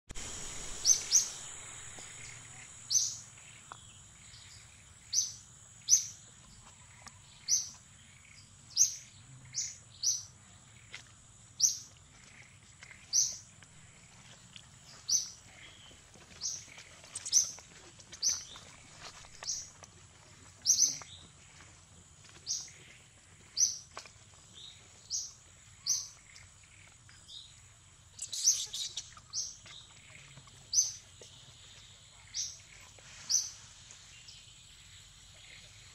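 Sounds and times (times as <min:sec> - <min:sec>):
steady high-pitched whine: 0:00.1 - 0:35.9
bird chirping: 0:00.2 - 0:10.9, 0:11.6 - 0:14.1, 0:14.8 - 0:19.8, 0:20.6 - 0:21.3, 0:24.5 - 0:35.9.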